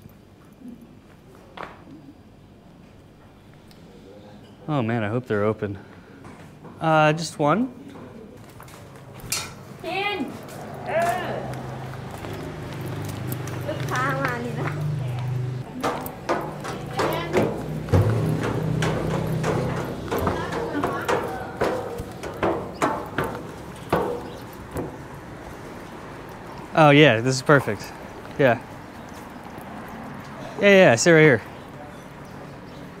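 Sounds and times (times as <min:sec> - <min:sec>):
voices: 0:06.8 - 0:33.0
footsteps on metal stairs: 0:08.5 - 0:30.3.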